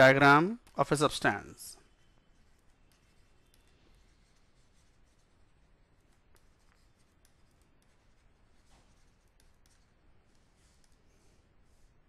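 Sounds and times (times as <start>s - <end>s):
stylus writing on a tablet: 0.0s - 12.0s.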